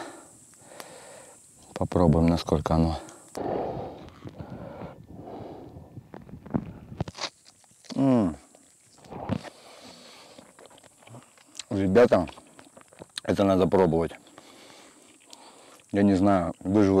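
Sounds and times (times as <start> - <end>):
mouth and breathing sounds: 2.9 - 11.7, 14.1 - 16.0.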